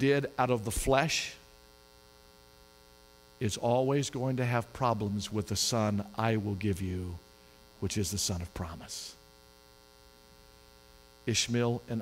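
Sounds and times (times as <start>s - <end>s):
faint mains hum: 0.0s - 12.0s.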